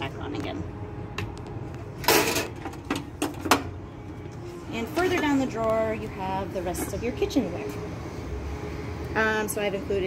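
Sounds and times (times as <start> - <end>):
metal lid clattering shut: 2.0 - 3.7.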